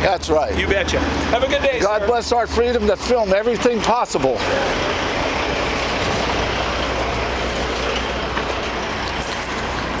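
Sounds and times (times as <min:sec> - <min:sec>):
road noise: 0:00.0 - 0:10.0
truck engine rumble: 0:00.0 - 0:10.0.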